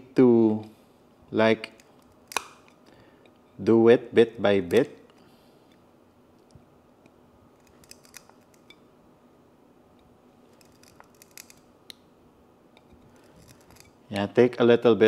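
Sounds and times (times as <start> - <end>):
side cutters snipping plastic: 1.7 - 2.7.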